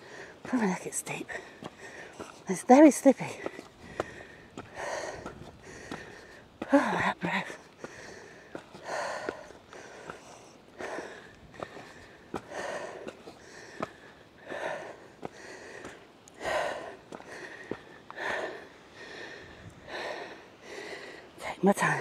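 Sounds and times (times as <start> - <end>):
footsteps on rock: 0.4 - 14.1, 15.2 - 18.4
person breathing hard: 1.3 - 2.4, 3.4 - 21.4.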